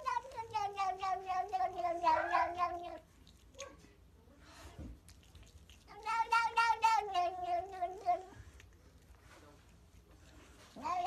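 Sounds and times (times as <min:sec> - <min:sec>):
cat meowing: 0:00.0 - 0:03.0, 0:06.0 - 0:08.4.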